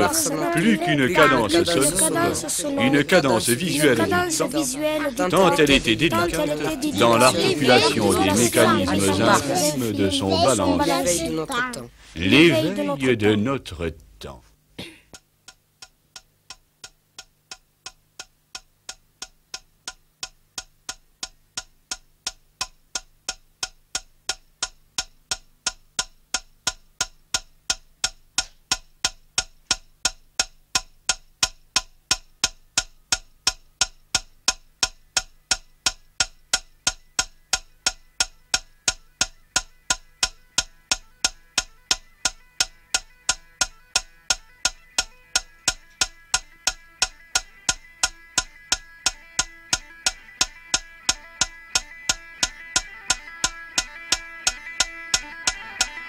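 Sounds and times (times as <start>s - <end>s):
clock-like ticking: 0.0s - 14.1s, 15.1s - 56.0s.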